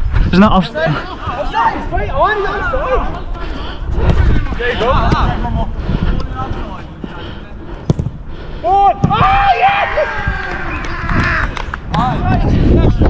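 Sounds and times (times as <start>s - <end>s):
wind rumble on microphone: 0.0s - 0.5s, 1.8s - 7.2s, 9.0s - 13.0s
people yelling: 0.9s - 3.6s, 8.6s - 12.4s.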